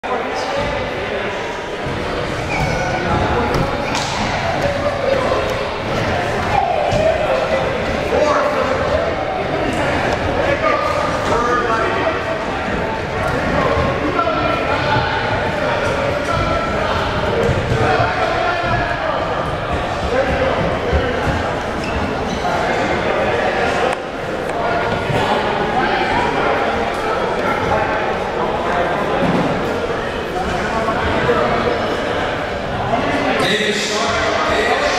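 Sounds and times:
crowd chatter echoing in hall: 0:00.0 - 0:34.9.

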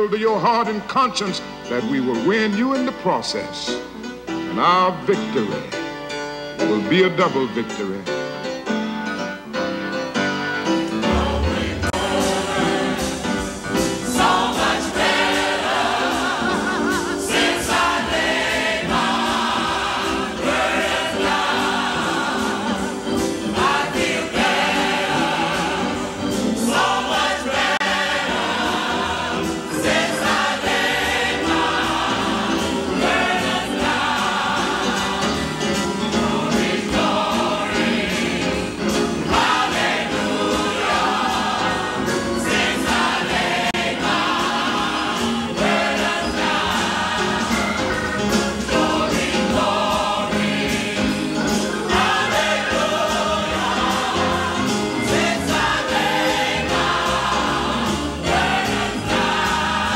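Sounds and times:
gospel choir singing: 0:08.6 - 0:59.9.

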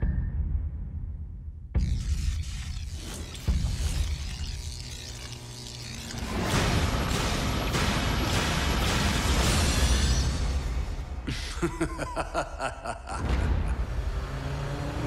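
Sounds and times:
dense trailer music and effects: 0:00.0 - 0:12.3, 0:13.0 - 0:15.0.

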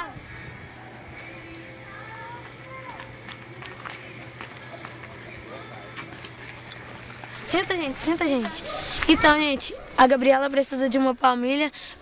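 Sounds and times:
children calling: 0:00.0 - 0:04.1, 0:07.5 - 0:10.0
steady low hum: 0:00.1 - 0:10.1
children running on dirt: 0:01.9 - 0:11.2.

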